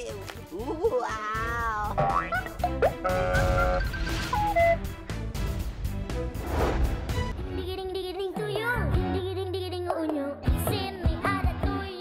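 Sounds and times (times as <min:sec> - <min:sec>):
cartoon sound effects: 0:02.0 - 0:04.8.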